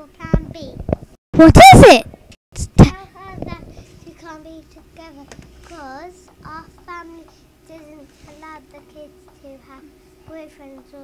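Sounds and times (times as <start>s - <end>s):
child's voice: 0.0s - 0.8s, 1.4s - 2.0s, 2.7s - 11.0s.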